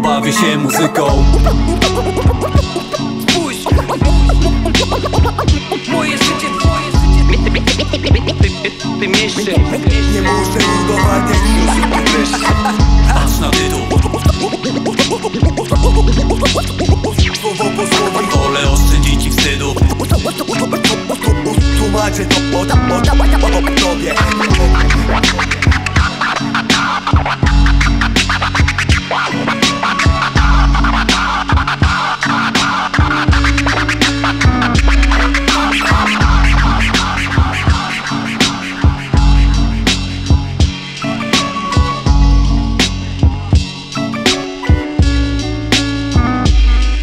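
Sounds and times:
hip-hop beat: 0:00.0 - 0:47.0
turntable scratching: 0:00.7 - 0:47.0
heavy bass note: 0:09.5 - 0:14.4.

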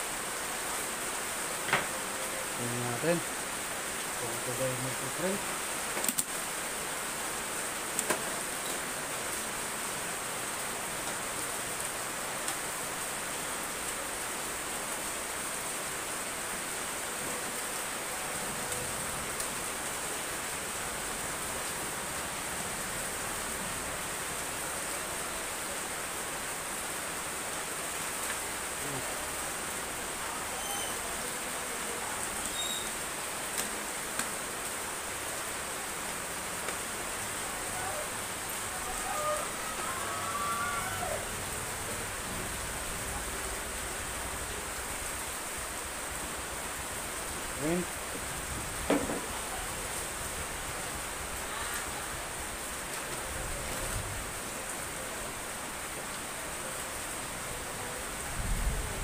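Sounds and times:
steady background hiss: 0:00.0 - 0:59.0.

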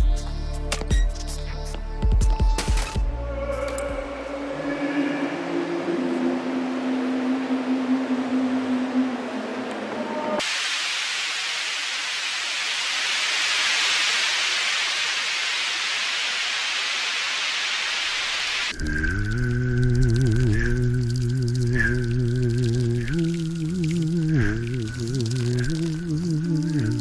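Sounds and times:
low electronic drone: 0:03.0 - 0:10.4, 0:18.7 - 0:27.0
steady hiss: 0:10.4 - 0:27.0.

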